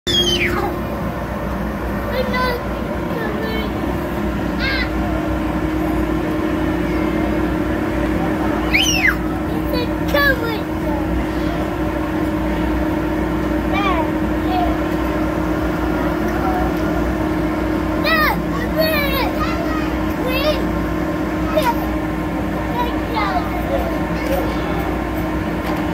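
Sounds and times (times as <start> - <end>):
high sound falling in pitch: 0.1 - 0.7
child crying out: 0.1 - 0.8
air blower droning: 0.1 - 25.9.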